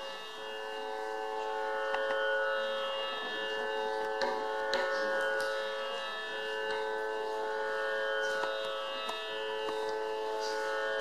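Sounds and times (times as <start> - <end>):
harmonium holding notes: 0.0 - 11.0.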